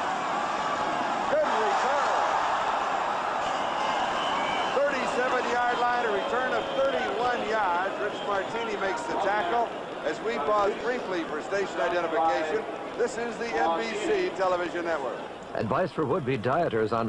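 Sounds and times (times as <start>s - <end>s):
stadium crowd roar: 0.0s - 16.3s
man talking: 4.8s - 17.0s.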